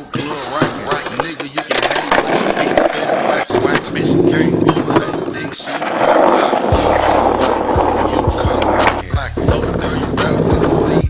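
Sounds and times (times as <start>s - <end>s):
person's voice: 0.0s - 11.0s
skateboard wheels rolling on asphalt: 0.0s - 11.0s
skateboard knocks: 0.1s - 10.9s.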